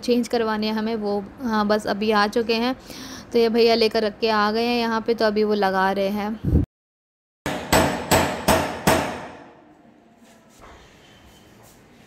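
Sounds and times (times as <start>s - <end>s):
hammer strikes on door: 7.5s - 9.6s.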